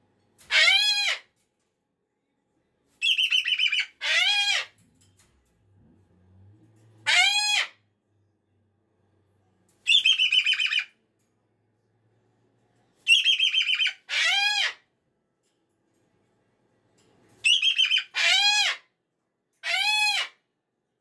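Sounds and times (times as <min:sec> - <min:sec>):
cockatoo screaming: 0:07.0 - 0:07.8, 0:17.9 - 0:18.8.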